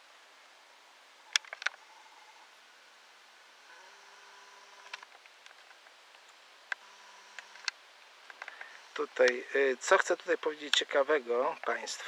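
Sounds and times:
zoom motor whine: 0:03.6 - 0:05.1, 0:06.8 - 0:07.7
light handling ticks: 0:04.8 - 0:10.9.

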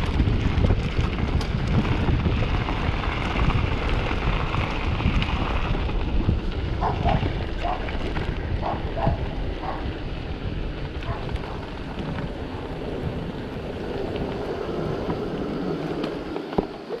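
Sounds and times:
tyres rushing on asphalt: 0:00.0 - 0:17.0
wind buffeting microphone: 0:00.0 - 0:17.0.

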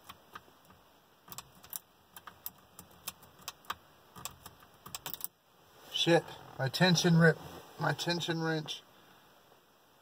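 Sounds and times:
lock pick clicking and scraping: 0:00.0 - 0:05.3.

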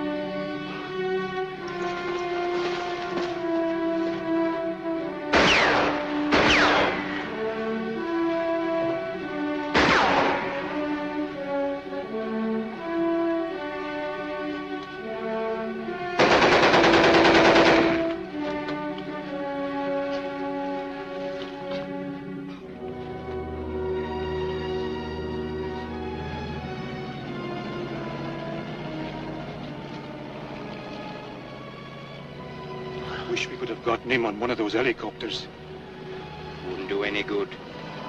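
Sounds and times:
orchestral film score: 0:00.0 - 0:38.0
gunfire blasts: 0:05.3 - 0:07.5, 0:09.7 - 0:11.1, 0:16.2 - 0:18.2
rapid machine-gun fire: 0:05.4 - 0:07.2, 0:09.8 - 0:10.6, 0:16.2 - 0:18.1.

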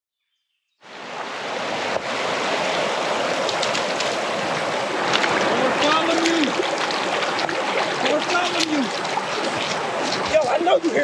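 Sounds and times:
water lapping over stony shore: 0:00.9 - 0:11.0.

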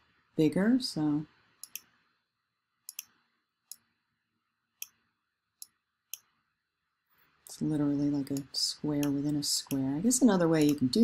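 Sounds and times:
computer mouse clicks: 0:01.6 - 0:02.0, 0:02.9 - 0:03.9, 0:08.3 - 0:09.9, 0:10.6 - 0:10.9.

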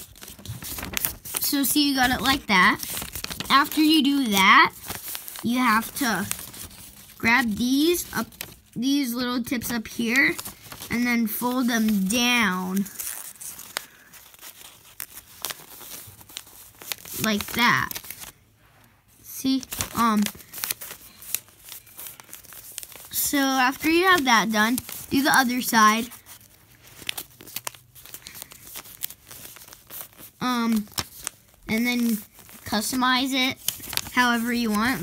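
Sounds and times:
paper being folded and creased: 0:00.0 - 0:18.4, 0:19.1 - 0:35.0
sharp paper crackles: 0:00.0 - 0:18.4, 0:19.1 - 0:35.0.

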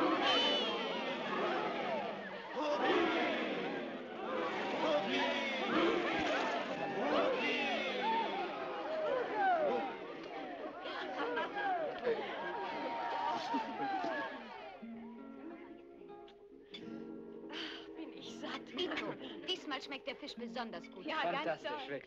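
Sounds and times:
crowd shouting and calling out: 0:00.0 - 0:15.4.

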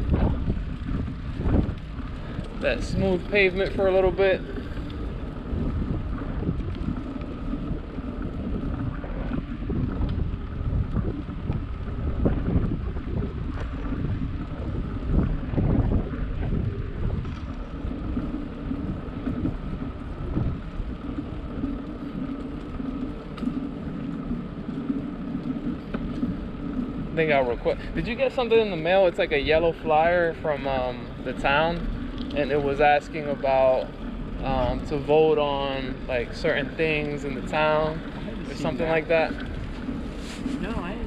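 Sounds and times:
bicycle tyres rolling on asphalt: 0:00.0 - 0:41.0
wind on microphone: 0:00.0 - 0:41.0.

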